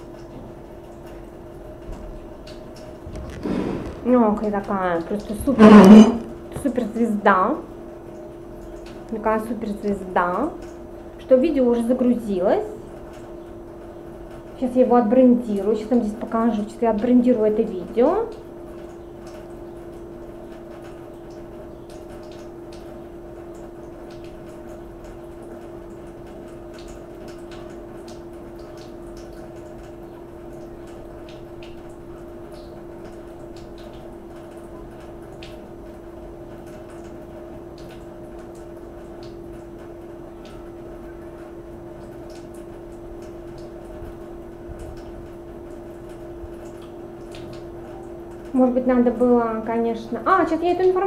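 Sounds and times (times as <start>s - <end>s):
machine humming: 1.6s - 6.6s.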